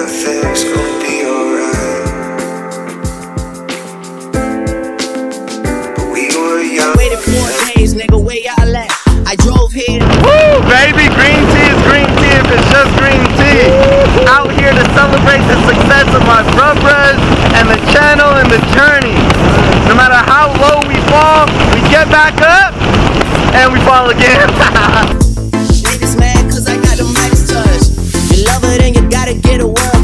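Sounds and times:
man shouting: 0:07.0 - 0:07.6, 0:09.6 - 0:14.8
wind buffeting microphone: 0:09.4 - 0:25.4.

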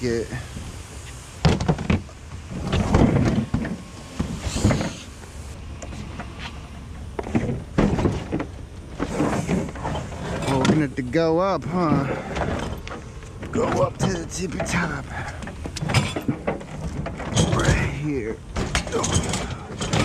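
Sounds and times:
scraping and shuffling: 0:00.0 - 0:20.0
knocks and thumps on fridge casing: 0:01.4 - 0:05.0, 0:07.2 - 0:08.5, 0:18.5 - 0:20.0.

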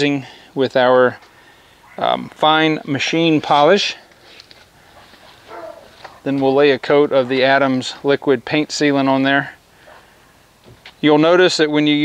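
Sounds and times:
faint animal call: 0:01.6 - 0:02.2, 0:04.9 - 0:06.3.

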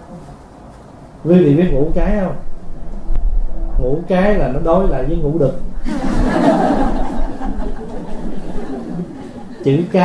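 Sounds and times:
audience laughing: 0:05.8 - 0:10.0.

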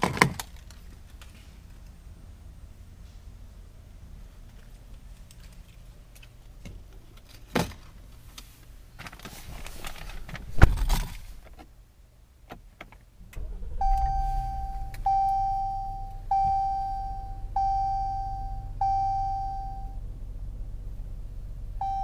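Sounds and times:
car engine idling: 0:13.1 - 0:22.0
dashboard warning chime: 0:13.8 - 0:20.0, 0:21.8 - 0:22.0.

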